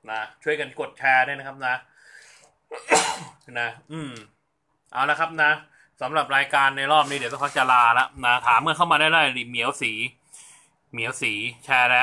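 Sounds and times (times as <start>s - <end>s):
faint intake of breath: 1.9s - 2.6s
man sneezing: 2.7s - 3.4s.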